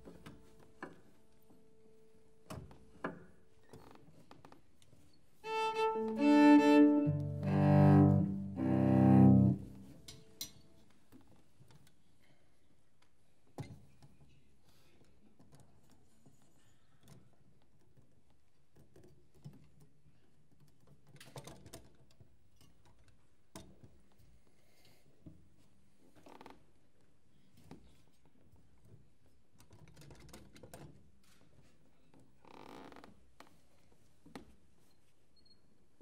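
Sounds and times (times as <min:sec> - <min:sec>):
cello note: 0:05.4 - 0:10.1
piano: 0:05.5 - 0:10.1.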